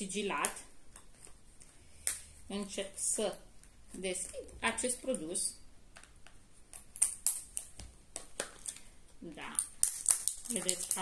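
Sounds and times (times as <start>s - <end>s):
plastic film crinkling and tearing: 9.6s - 11.0s.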